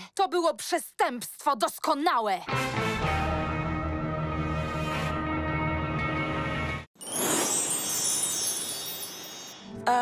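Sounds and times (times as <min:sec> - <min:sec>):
glittering chime sting: 0:07.0 - 0:09.8.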